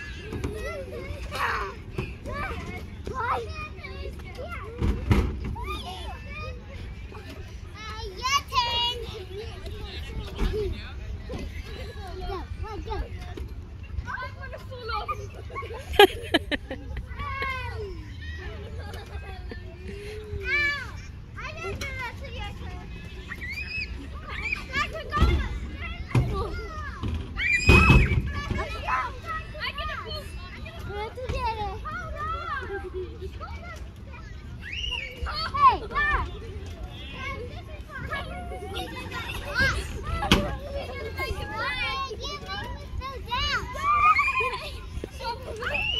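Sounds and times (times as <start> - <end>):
children squealing and calling: 0.0 - 45.9.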